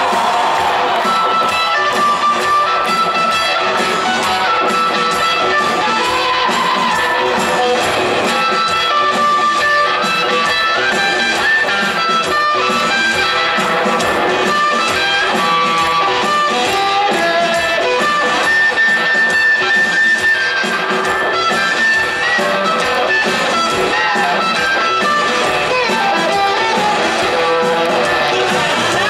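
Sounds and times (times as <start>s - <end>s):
lead electric guitar: 0.0s - 29.0s
live blues-rock band: 0.0s - 29.0s.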